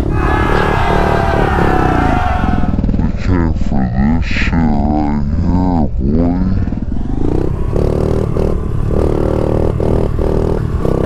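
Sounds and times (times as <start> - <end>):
pit bike engine revving: 0.0 - 11.0.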